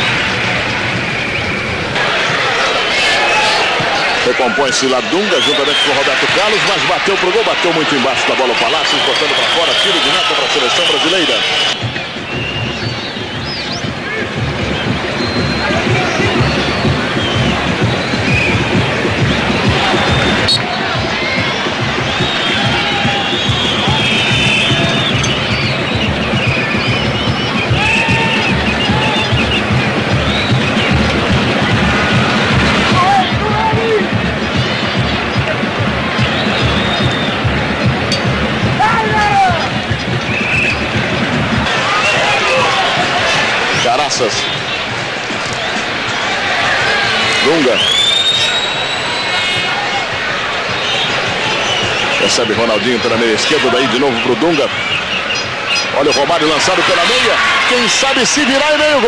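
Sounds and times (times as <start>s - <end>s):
crowd roar: 0.0s - 59.0s
steady drumbeat: 0.0s - 59.0s.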